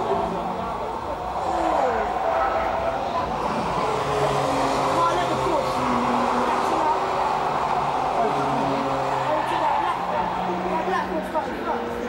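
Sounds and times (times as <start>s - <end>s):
car engine at steady revs: 0.0s - 12.0s
road noise: 0.0s - 12.0s.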